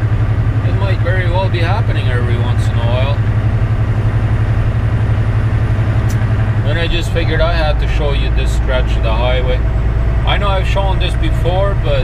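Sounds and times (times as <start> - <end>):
road noise: 0.0 - 12.0
truck diesel engine droning: 0.0 - 12.0.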